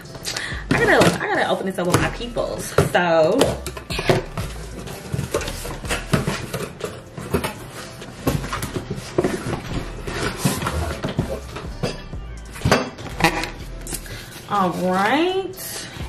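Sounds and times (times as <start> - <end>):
cardboard box scraping and rustling: 4.2 - 11.6.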